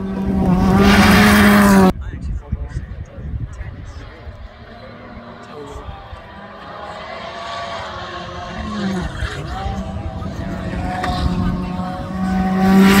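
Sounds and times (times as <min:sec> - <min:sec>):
rally car engine approaching: 0:00.0 - 0:01.9, 0:03.4 - 0:13.0.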